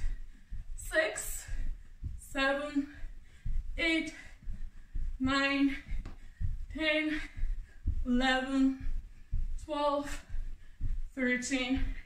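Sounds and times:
feet thumping on floor: 0.0s - 12.0s.

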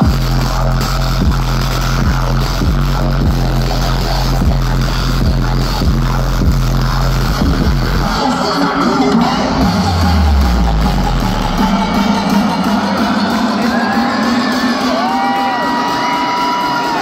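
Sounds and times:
deep bass note: 0.0s - 8.2s, 9.2s - 14.5s.

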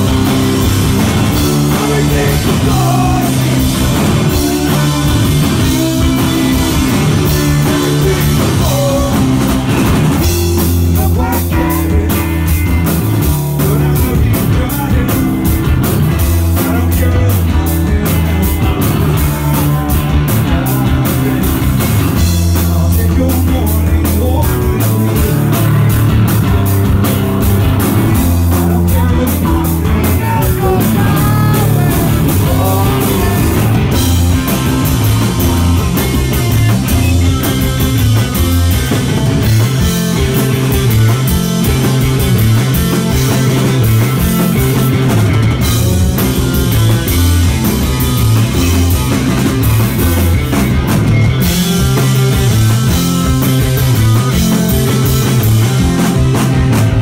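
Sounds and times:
bass guitar: 0.0s - 57.0s
drum kit: 0.0s - 57.0s
electric guitar: 0.0s - 57.0s.

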